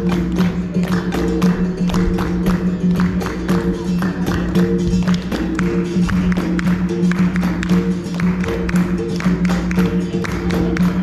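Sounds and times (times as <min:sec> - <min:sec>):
hand drum beating: 0:00.0 - 0:11.0
people clapping in rhythm: 0:00.0 - 0:11.0.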